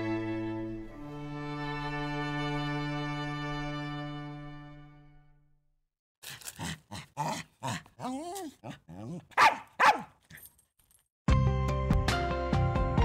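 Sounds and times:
dog whining: 0:07.2 - 0:10.1
small dog yapping: 0:07.2 - 0:10.2.

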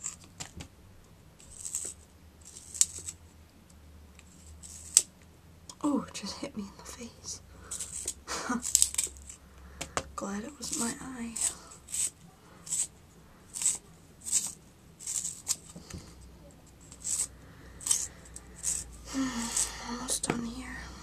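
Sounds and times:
pencil sharpener shaving wood: 0:01.4 - 0:03.2, 0:04.2 - 0:05.1, 0:07.7 - 0:09.4, 0:10.3 - 0:16.0, 0:16.8 - 0:20.2.

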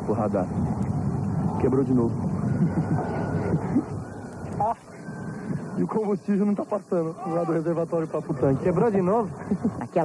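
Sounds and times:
wind noise on microphone: 0:00.0 - 0:06.4
faint high whine: 0:00.0 - 0:10.0
people talking indistinctly: 0:00.0 - 0:10.0.

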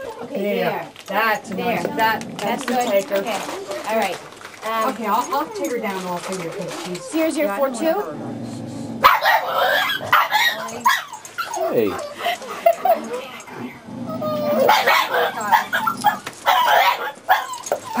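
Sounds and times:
dog barking and yipping: 0:09.0 - 0:13.0, 0:14.3 - 0:18.0.

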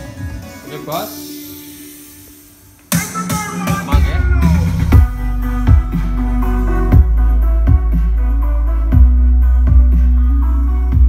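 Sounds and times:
music through a loudspeaker: 0:00.0 - 0:11.0
heavy bass: 0:02.9 - 0:11.0.

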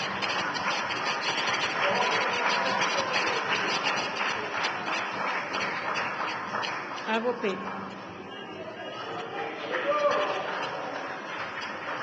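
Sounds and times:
crowd applause: 0:00.0 - 0:12.0.

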